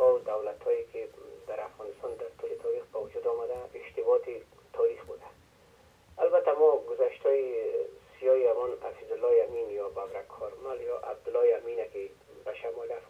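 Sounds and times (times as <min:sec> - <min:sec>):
person talking over telephone: 0:00.0 - 0:05.4, 0:06.2 - 0:13.0.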